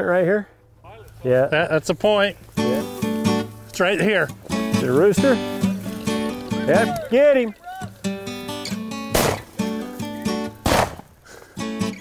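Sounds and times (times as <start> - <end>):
acoustic guitar music: 1.6 - 12.0
shotgun shots: 9.1 - 9.5, 10.6 - 11.1.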